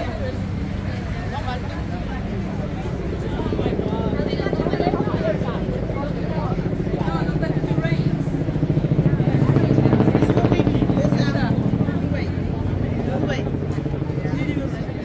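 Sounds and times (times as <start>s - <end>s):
people's voices: 0.0s - 15.0s
vehicle engine pulsing drone: 0.0s - 15.0s.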